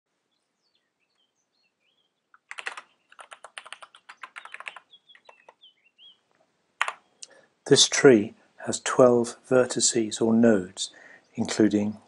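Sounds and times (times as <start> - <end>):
computer keyboard typing: 2.4 - 5.6, 6.8 - 7.0.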